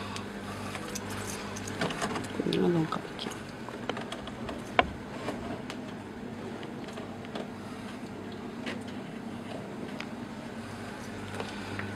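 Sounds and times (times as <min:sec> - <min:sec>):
low mechanical hum: 0:00.0 - 0:11.9.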